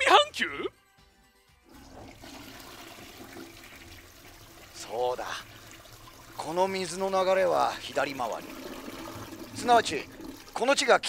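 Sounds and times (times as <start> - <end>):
toilet flushing: 1.7 - 11.0.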